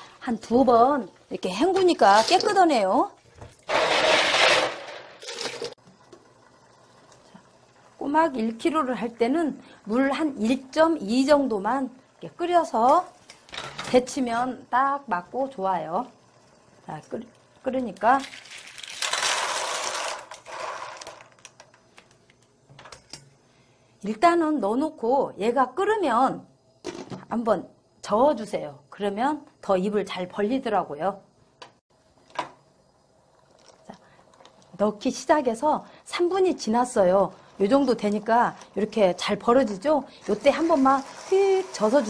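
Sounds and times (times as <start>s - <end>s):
shells pouring into pot: 3.7s - 5.8s, 18.2s - 21.7s.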